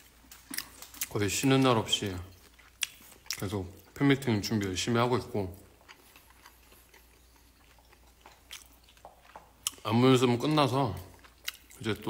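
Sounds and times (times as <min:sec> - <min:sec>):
close-up chewing: 0:00.0 - 0:12.0.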